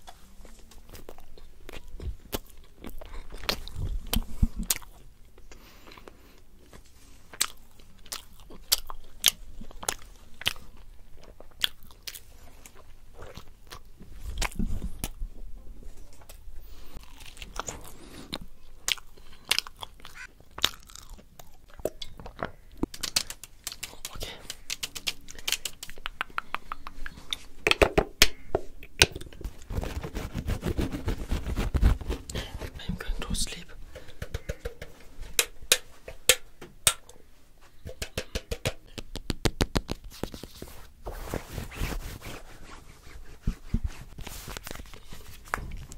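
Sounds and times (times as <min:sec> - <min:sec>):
chewing and biting flatbread: 0:00.8 - 0:15.2, 0:17.0 - 0:27.4, 0:41.8 - 0:45.9
scratchy rustling: 0:29.4 - 0:33.3, 0:40.0 - 0:45.9
fingers tapping on microphone: 0:34.0 - 0:35.5, 0:37.8 - 0:40.1.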